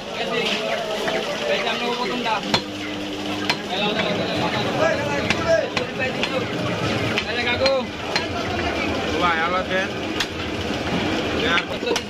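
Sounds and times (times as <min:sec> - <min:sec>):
busy market background noise: 0:00.0 - 0:12.0.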